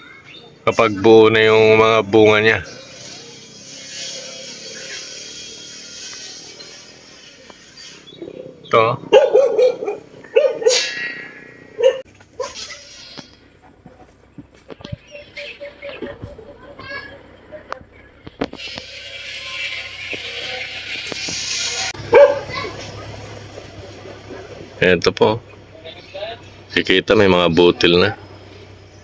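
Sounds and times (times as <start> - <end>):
distant small engine humming: 0.0 - 29.0.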